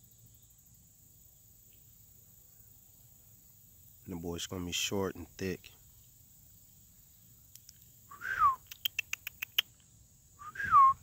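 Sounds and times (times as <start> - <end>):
sharp tongue clicks: 7.5 - 9.8
person whistling: 8.1 - 8.6, 10.4 - 11.0.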